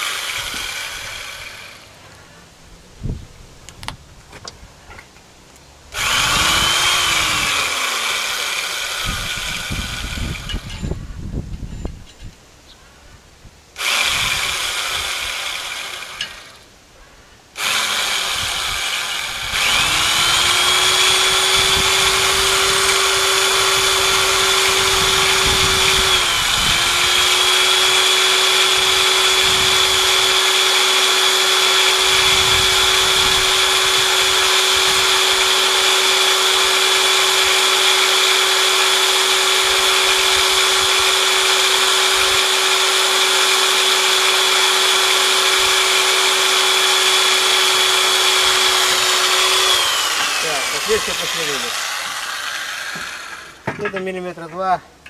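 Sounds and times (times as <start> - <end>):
electric drill boring metal: 0.0 - 1.9, 5.9 - 11.0, 13.8 - 16.7, 17.6 - 54.0.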